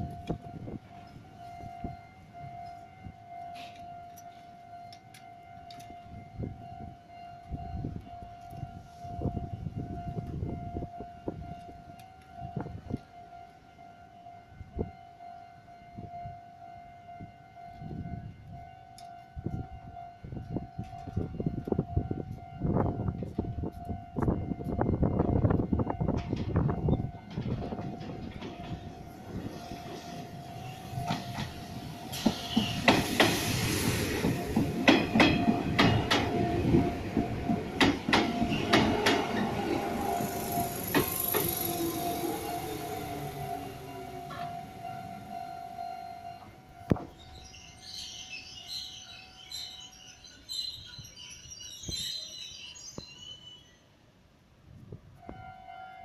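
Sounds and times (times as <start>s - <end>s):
electric train passing: 0.0s - 56.0s.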